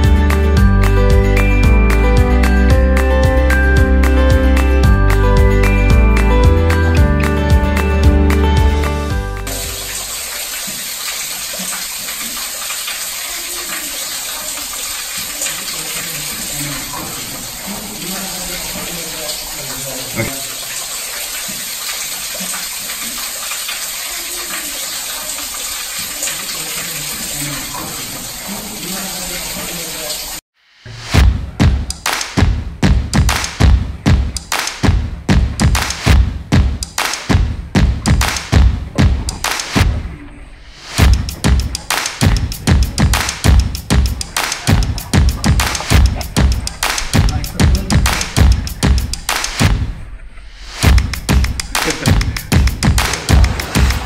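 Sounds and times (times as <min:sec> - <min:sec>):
music with punchy beat: 0:00.0 - 0:09.8, 0:30.9 - 0:39.9, 0:40.9 - 0:49.9, 0:50.8 - 0:54.0
water splashing into a pool: 0:07.8 - 0:30.4, 0:38.0 - 0:54.0.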